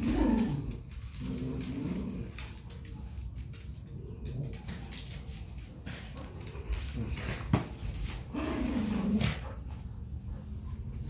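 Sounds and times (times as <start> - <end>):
dog growling playfully: 0.0 - 2.6, 8.2 - 9.7
claws clicking on tile floor: 0.0 - 9.2
dogs scuffling: 0.0 - 11.0.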